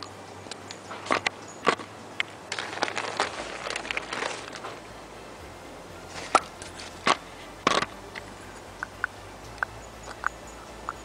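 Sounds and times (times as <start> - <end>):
crackly scraping and rustling: 0.0 - 5.1, 6.0 - 8.4.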